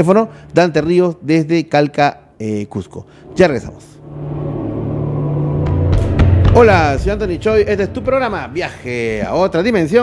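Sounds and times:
low rumbling synth drone: 3.0 - 9.8.

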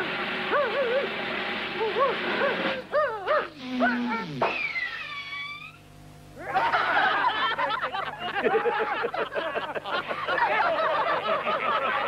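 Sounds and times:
cartoon yelping cries: 2.9 - 5.8.

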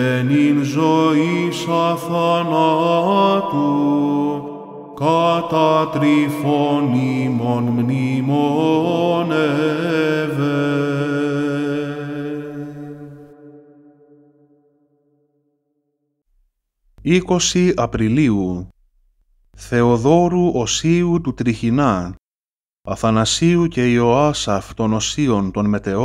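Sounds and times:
chant over held drone: 0.0 - 14.2.

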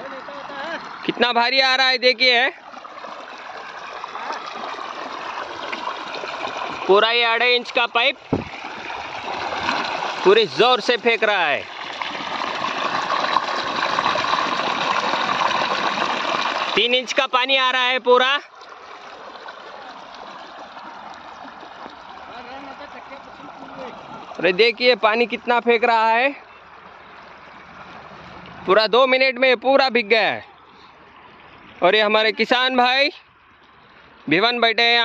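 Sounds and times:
water gushing from pipe: 0.0 - 29.3
low thump: 8.3 - 8.6.

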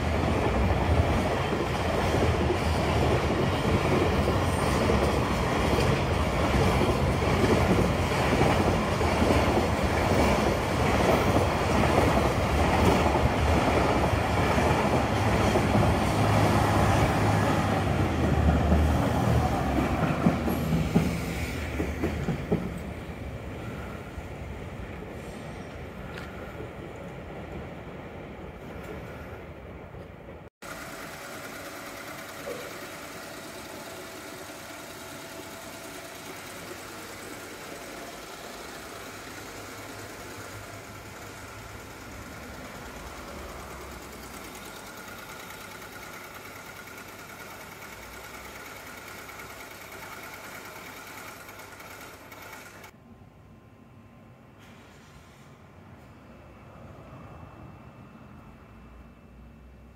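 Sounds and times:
train rumbling: 0.0 - 53.0.

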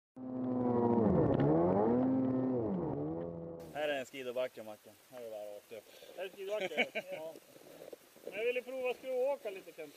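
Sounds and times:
engine revving: 0.2 - 3.7
man talking: 3.7 - 7.4, 8.3 - 9.9.

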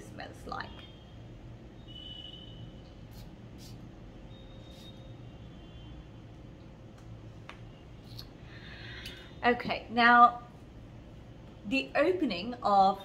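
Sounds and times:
perfume atomizer spraying: 3.0 - 3.9.

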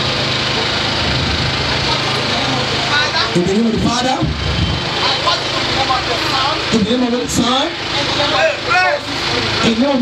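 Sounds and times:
steady low rumble: 0.0 - 7.8
voices: 0.0 - 10.0.

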